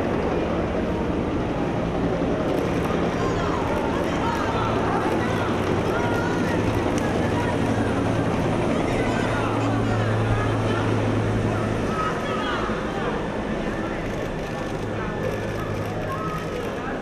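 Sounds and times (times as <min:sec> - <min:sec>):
indistinct crowd voices: 0:00.0 - 0:17.0.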